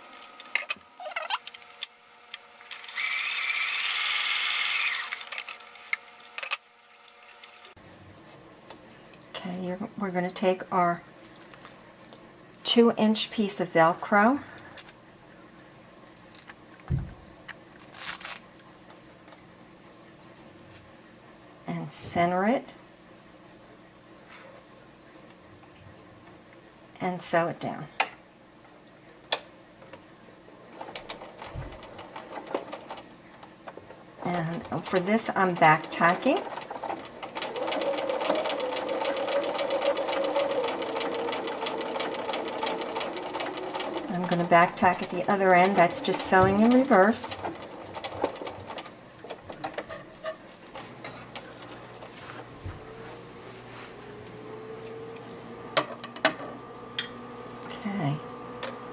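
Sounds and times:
electric sewing machine stitching: 0.0 - 7.8, 30.8 - 33.1, 33.7 - 49.9
velcro clicks and rustles: 16.0 - 16.6, 17.5 - 18.5
soft thump: 16.9 - 17.2
velcro rasp: 17.8 - 18.4.

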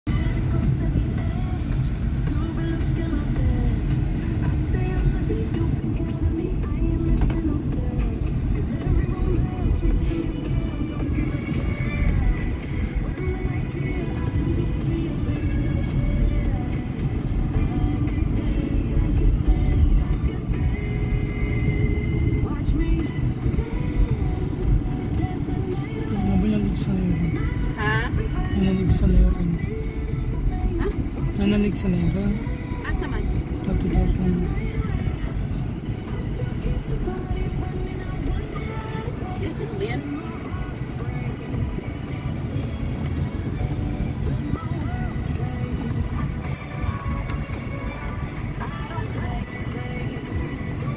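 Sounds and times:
music with singing: 0.0 - 50.9
road and wind noise in car: 0.0 - 50.9.

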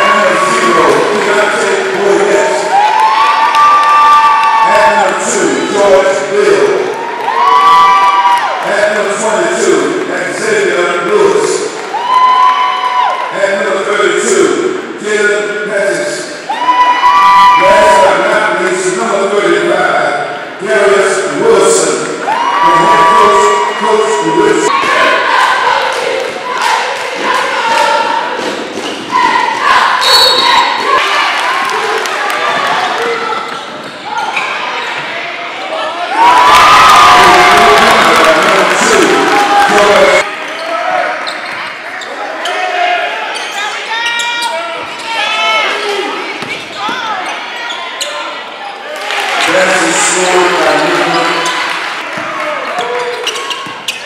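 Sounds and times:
crowd cheering: 0.0 - 10.1, 10.7 - 14.4, 21.7 - 54.0
crowd voices and shouts: 0.0 - 54.0.

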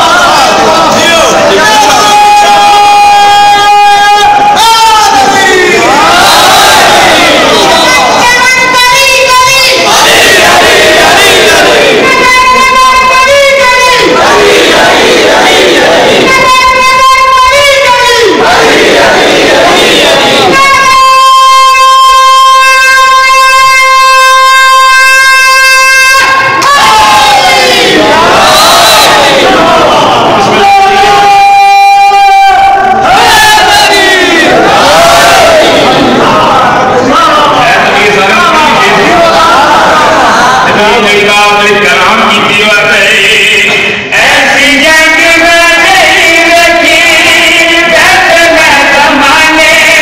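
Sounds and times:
loud piercing steady tone: 0.0 - 15.0, 15.7 - 18.7, 19.8 - 36.6
crowd voices: 0.0 - 50.0
man singing long note over pa: 20.4 - 27.5.

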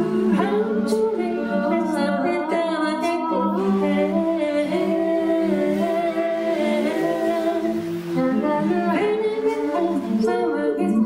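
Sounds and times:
a cappella group singing harmony: 0.0 - 11.0.

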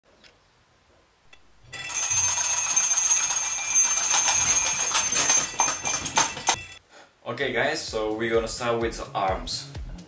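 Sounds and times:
alarm clock bells ringing: 1.7 - 6.8.

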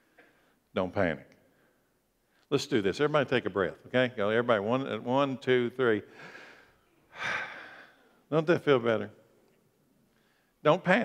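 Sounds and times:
congregation breathing together: 6.1 - 8.3.

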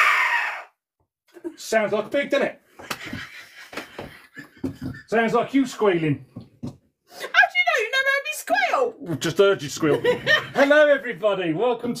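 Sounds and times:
quiet laughter: 2.8 - 5.3.

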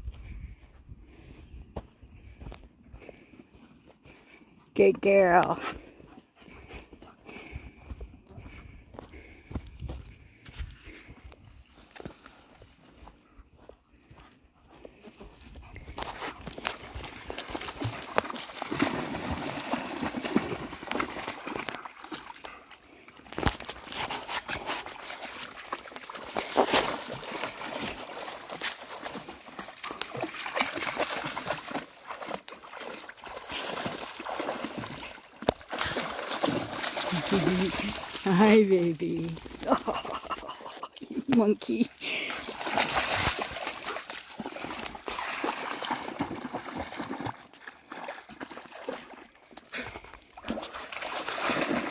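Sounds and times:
dogs splashing through water: 14.1 - 51.9.

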